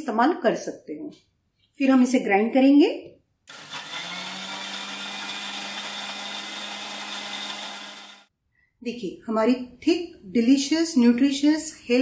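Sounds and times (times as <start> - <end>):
mixer grinder motor hum: 3.5 - 8.3.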